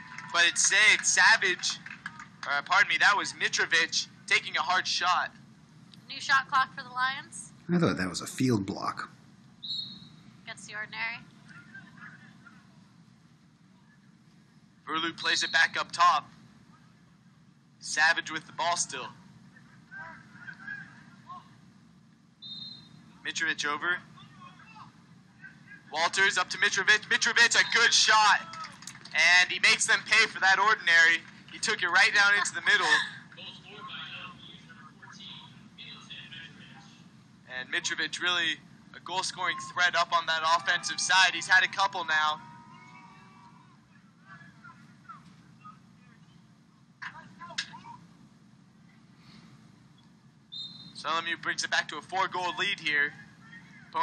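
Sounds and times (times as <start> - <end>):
low background hum: 0.0 - 54.0
faint distant shouts: 24.0 - 26.0, 39.1 - 46.4.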